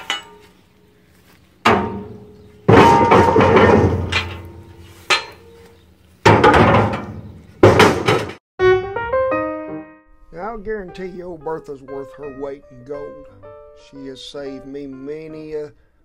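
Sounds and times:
iron stove plates clanking: 0.0s - 0.5s, 1.7s - 5.6s
piano music: 8.6s - 15.8s.

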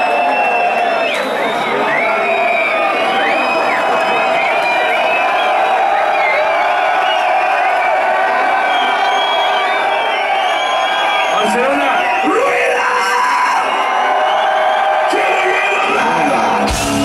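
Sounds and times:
concert crowd cheering: 0.0s - 17.0s.

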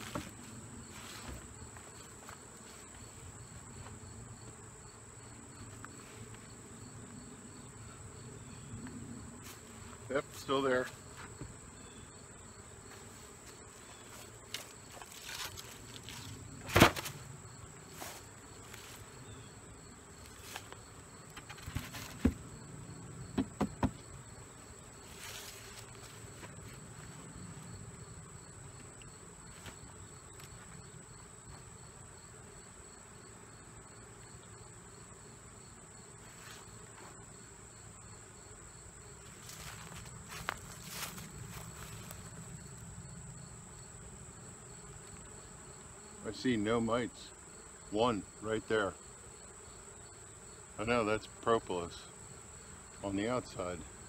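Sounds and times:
honeybees buzzing: 0.0s - 54.0s
insects chirping: 0.0s - 54.0s
wooden hive parts knocking: 23.3s - 24.1s.

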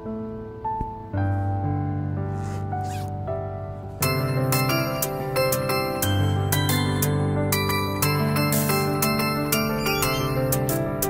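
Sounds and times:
background music: 0.0s - 11.0s
zipper on fabric bag: 2.3s - 3.1s.

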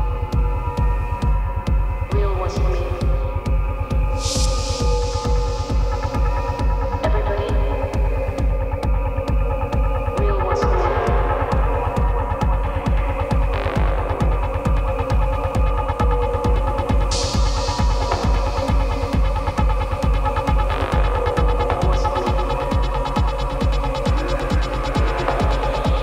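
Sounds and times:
techno kick drum and bass: 0.0s - 26.0s.

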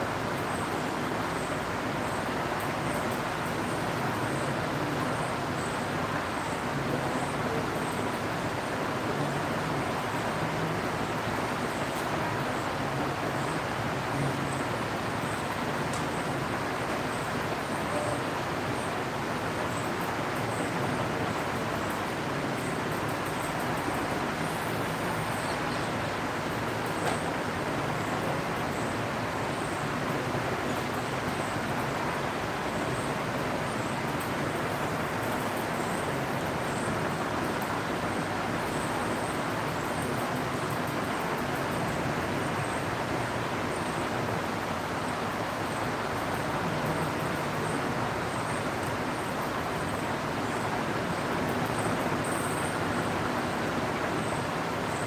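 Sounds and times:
steady background noise: 0.0s - 55.0s.

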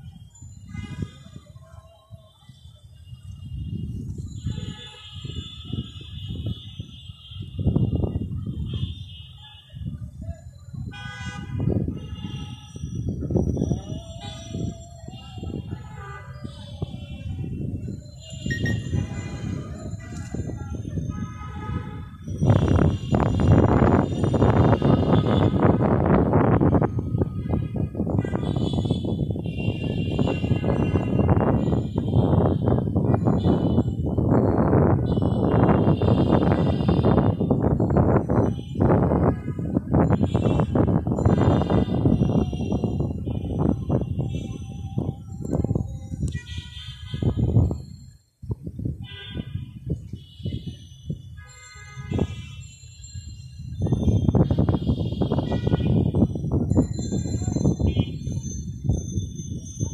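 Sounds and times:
city traffic: 0.0s - 59.9s
car horns honking: 18.4s - 20.4s, 21.1s - 26.4s, 27.3s - 34.0s, 35.0s - 37.6s, 39.2s - 42.3s, 46.3s - 47.6s, 51.4s - 52.6s, 54.5s - 56.2s.

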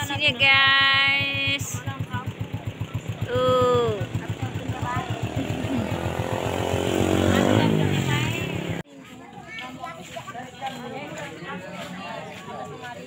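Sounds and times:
people talking: 0.0s - 13.0s
small engine puttering: 0.0s - 13.0s.

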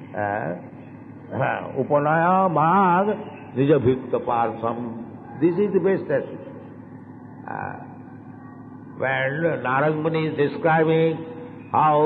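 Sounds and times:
background hiss and room noise: 0.0s - 12.0s.

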